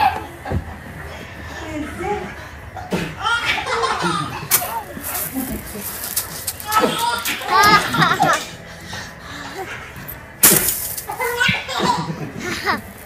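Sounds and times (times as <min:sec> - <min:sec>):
babies babbling and laughing: 0:01.5 - 0:08.6.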